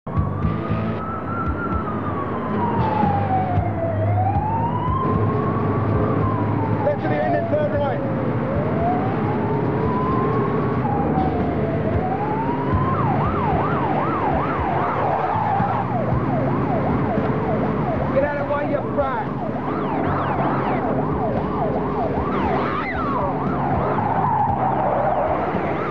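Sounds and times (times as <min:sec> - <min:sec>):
fire engine running: 0:00.1 - 0:25.9
fire engine siren wailing: 0:00.1 - 0:25.9.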